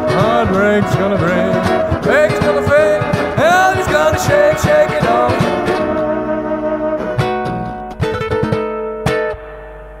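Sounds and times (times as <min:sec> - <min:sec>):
blues instrumental music: 0:00.0 - 0:10.0.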